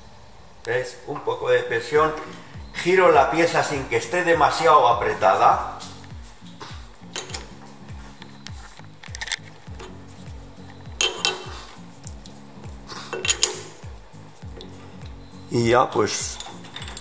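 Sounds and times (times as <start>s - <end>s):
faint background music with beat: 1.7s - 17.0s.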